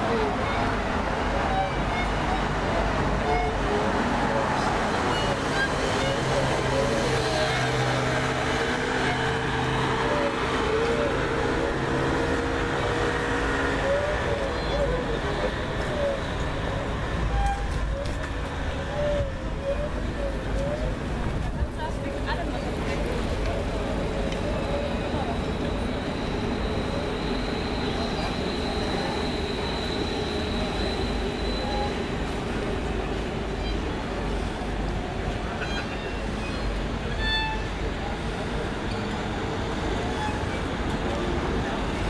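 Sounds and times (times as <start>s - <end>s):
street noise: 0.0s - 42.0s
bowed violin: 3.2s - 3.8s, 4.6s - 12.0s, 17.2s - 18.2s, 35.5s - 39.1s.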